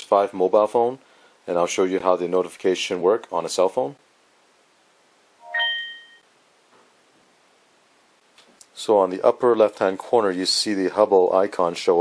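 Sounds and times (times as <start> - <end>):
phone notification chime: 5.4 - 6.2.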